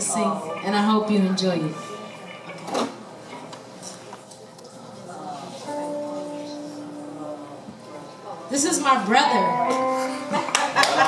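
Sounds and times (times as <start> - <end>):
faint murmur: 0.0 - 10.9.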